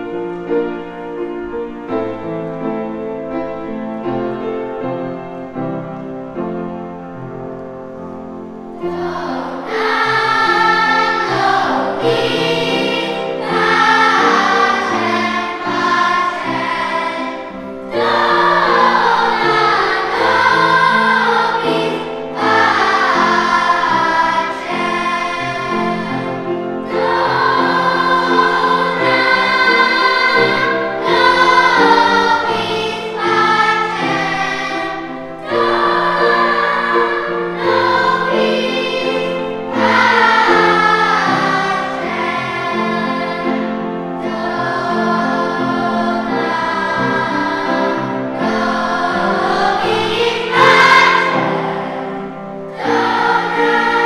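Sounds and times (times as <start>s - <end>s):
children's choir singing: 0.0s - 54.0s.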